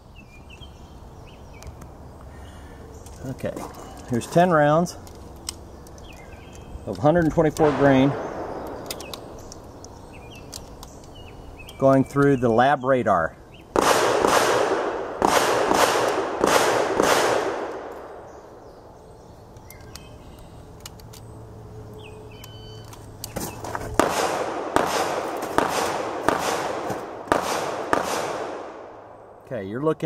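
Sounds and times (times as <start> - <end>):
pistol shots: 7.6 - 9.2, 13.7 - 18.3, 24.0 - 29.2.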